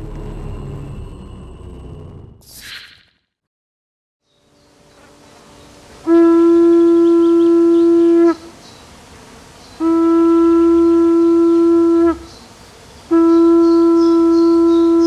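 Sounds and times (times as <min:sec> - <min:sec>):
hunting horn blasts: 0:06.0 - 0:08.6, 0:09.8 - 0:15.0.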